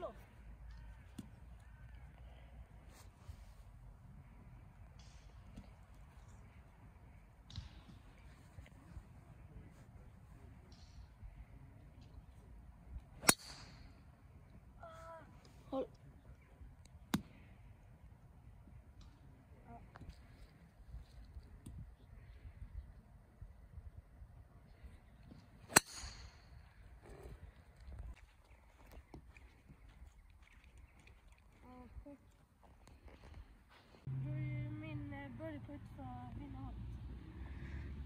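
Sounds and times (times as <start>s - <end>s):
golf club striking ball: 13.2s - 13.9s, 25.7s - 26.6s.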